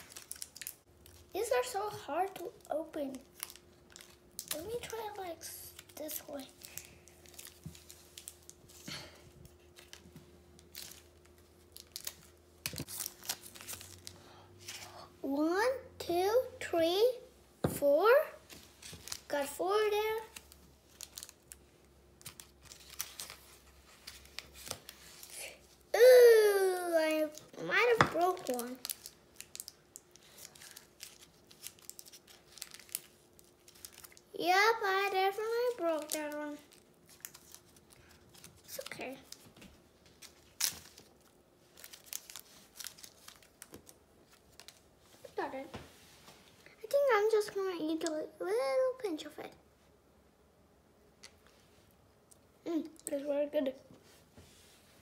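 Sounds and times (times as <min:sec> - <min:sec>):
wrapper crinkling: 0:00.0 - 0:15.0, 0:18.5 - 0:45.6
faint steady hum: 0:00.0 - 0:55.0.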